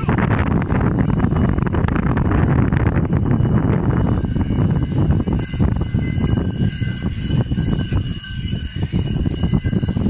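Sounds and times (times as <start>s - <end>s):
harness bells jingling: 0.0s - 10.0s.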